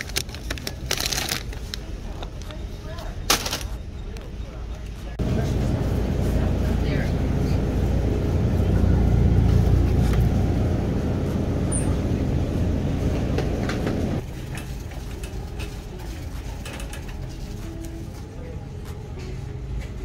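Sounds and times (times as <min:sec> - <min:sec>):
shopping cart rolling: 0:00.0 - 0:03.8, 0:05.3 - 0:19.1.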